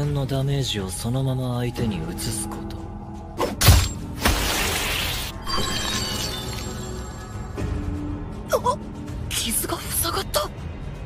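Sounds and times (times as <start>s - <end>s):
background music: 0.0s - 11.0s
glassy tinkling shimmer: 5.4s - 7.5s.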